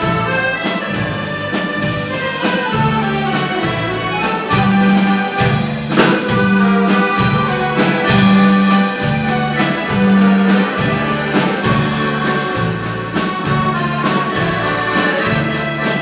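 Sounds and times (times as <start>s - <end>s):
accordions playing dance music: 0.0s - 16.0s.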